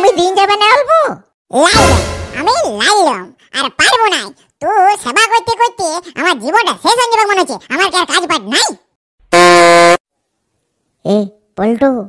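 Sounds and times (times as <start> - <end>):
comic horn blast: 1.8 - 2.6, 9.3 - 10.0.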